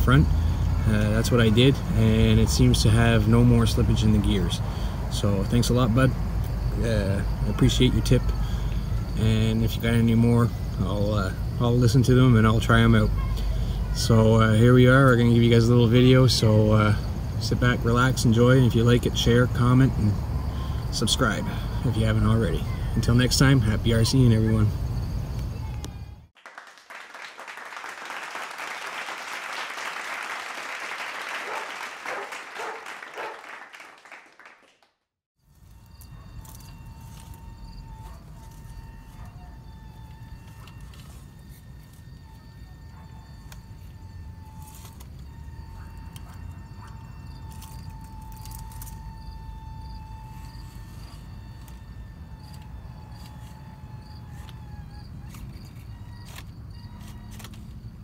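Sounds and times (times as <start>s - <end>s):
electric motor and gears whining: 35.5s - 58.0s.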